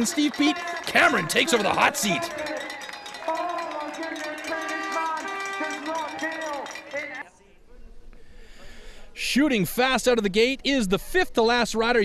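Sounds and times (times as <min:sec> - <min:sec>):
person speaking: 0:00.0 - 0:02.5.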